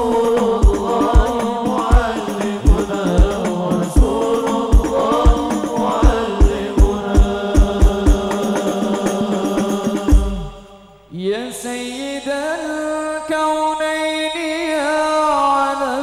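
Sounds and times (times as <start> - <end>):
frame drum strokes: 0.0 - 10.6
men singing: 0.0 - 16.0.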